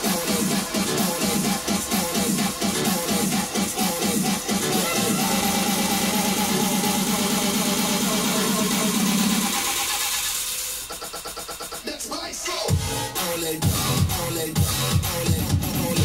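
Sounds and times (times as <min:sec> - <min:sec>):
electronic dance music: 0:00.0 - 0:16.0
fast ticking beat: 0:00.0 - 0:16.0.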